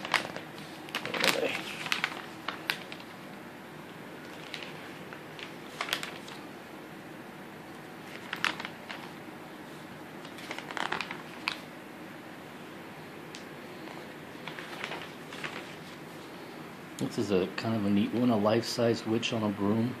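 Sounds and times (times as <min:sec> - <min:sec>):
glossy paper pages rustling: 0:00.0 - 0:03.3, 0:04.2 - 0:06.5, 0:07.7 - 0:11.7, 0:13.3 - 0:16.5.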